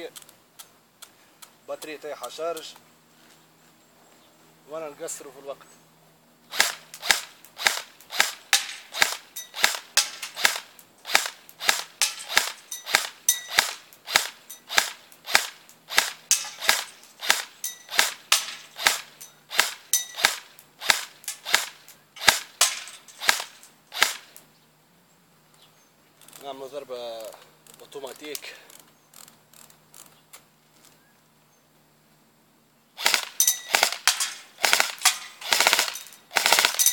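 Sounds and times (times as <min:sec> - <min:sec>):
airsoft rifle shots: 0:06.5 - 0:24.4, 0:33.0 - 0:36.9.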